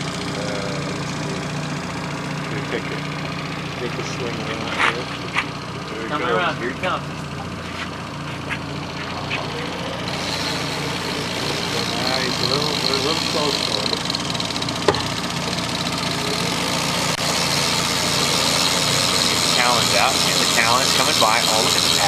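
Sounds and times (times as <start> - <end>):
boat motor running: 0.0 - 22.0.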